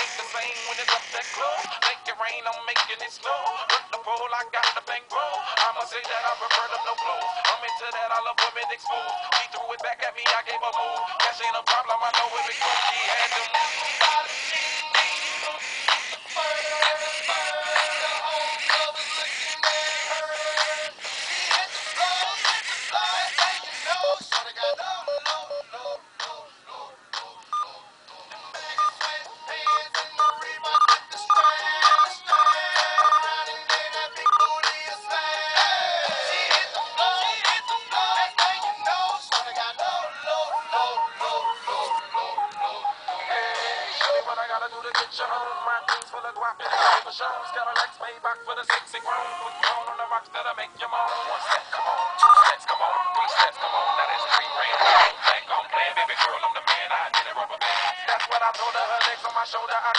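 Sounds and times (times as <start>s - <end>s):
tinny hip-hop song from toy speaker: 0.0s - 59.9s.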